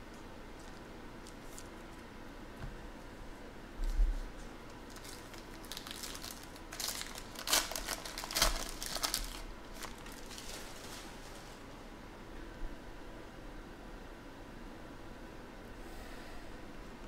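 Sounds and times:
foil pack tearing and crinkling: 0:04.7 - 0:11.6.

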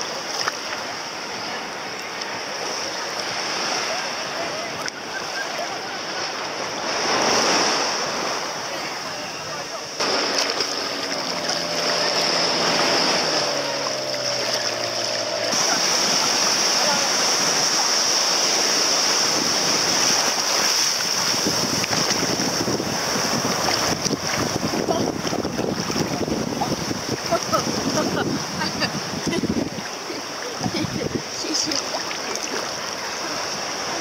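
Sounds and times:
small water splashes: 0:00.0 - 0:09.0, 0:09.6 - 0:34.0
motorboat engine hum: 0:00.0 - 0:34.0
sea water sloshing: 0:00.0 - 0:34.0
surf breaking: 0:00.0 - 0:34.0.

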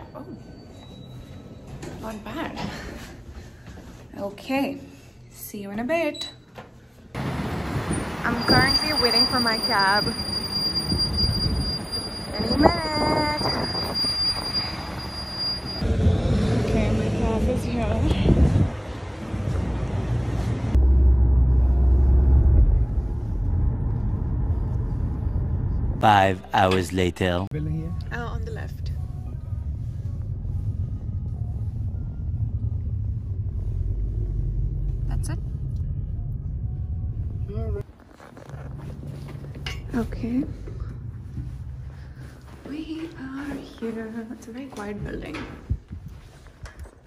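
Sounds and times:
wind: 0:07.1 - 0:26.8, 0:27.8 - 0:47.0
cars and trucks passing: 0:07.2 - 0:27.4, 0:28.4 - 0:37.8, 0:38.5 - 0:43.4
rising pitched squeal: 0:08.3 - 0:15.9.

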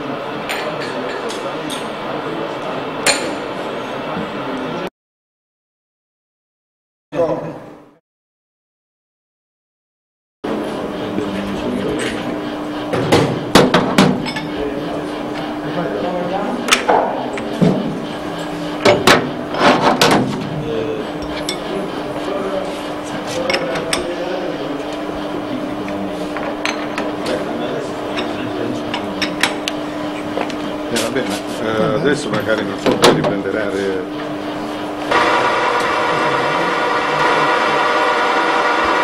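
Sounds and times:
steady hum: 0:10.4 - 0:39.0.

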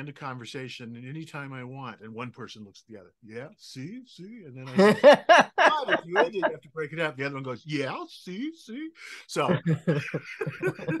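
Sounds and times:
person speaking: 0:00.0 - 0:11.0
person chuckling: 0:04.7 - 0:06.6, 0:09.4 - 0:11.0.

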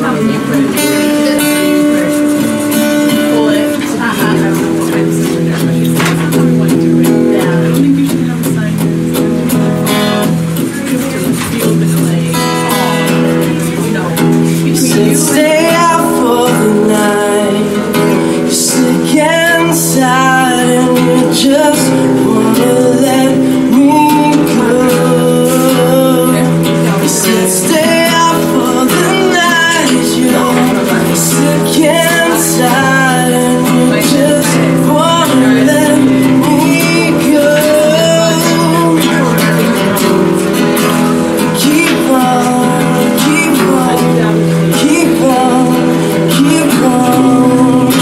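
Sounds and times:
person singing: 0:00.0 - 0:09.0, 0:10.4 - 0:48.0
acoustic guitar strumming: 0:00.0 - 0:48.0.

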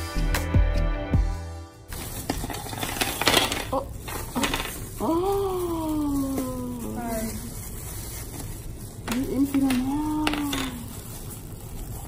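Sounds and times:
plastic tubes clicking: 0:02.2 - 0:05.1.

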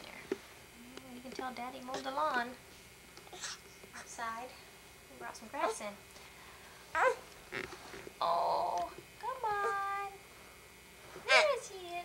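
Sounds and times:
baby squealing and whining: 0:07.0 - 0:07.2.

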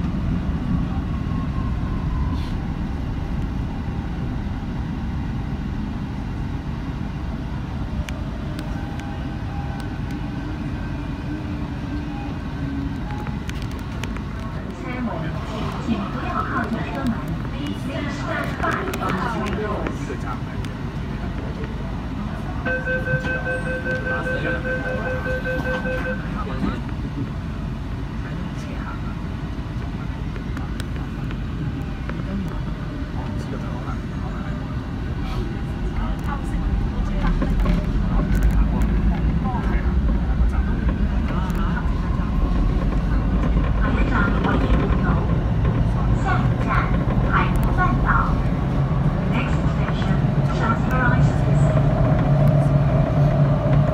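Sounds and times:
train rumbling in tunnel: 0:00.0 - 0:53.9.

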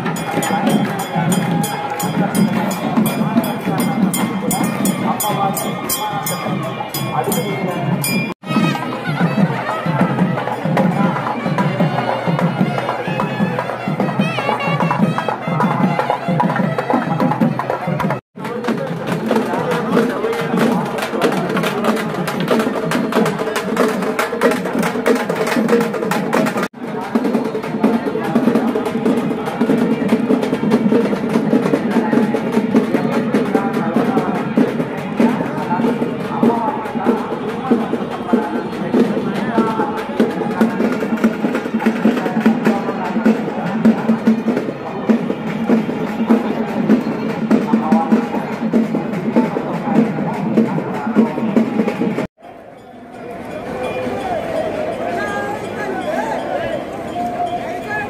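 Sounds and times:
crowd voices: 0:00.0 - 0:58.0.

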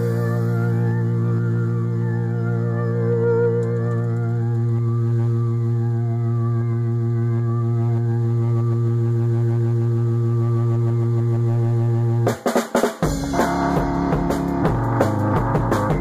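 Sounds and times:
low droning musical note: 0:00.0 - 0:12.3, 0:13.1 - 0:16.0.

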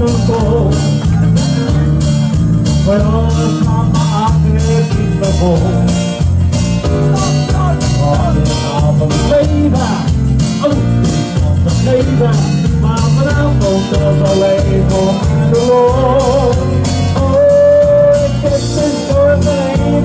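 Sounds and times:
bass line: 0:00.0 - 0:20.0
drums: 0:00.0 - 0:20.0
electric guitars: 0:00.0 - 0:20.0
keyboard: 0:00.0 - 0:20.0.

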